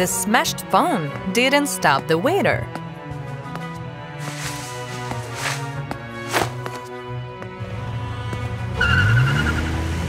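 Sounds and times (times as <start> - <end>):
background music: 0.0 - 10.0
car engine revving: 7.6 - 10.0
tire squeal: 8.7 - 9.9.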